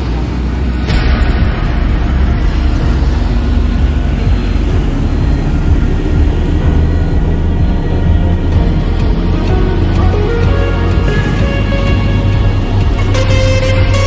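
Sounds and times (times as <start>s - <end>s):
vehicle road and engine rumble: 0.0s - 14.0s.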